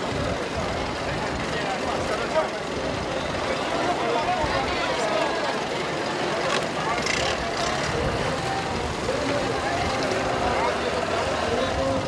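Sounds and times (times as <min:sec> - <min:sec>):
murmur of crowd voices: 0:00.0 - 0:12.0
outboard motors idling: 0:00.0 - 0:12.0.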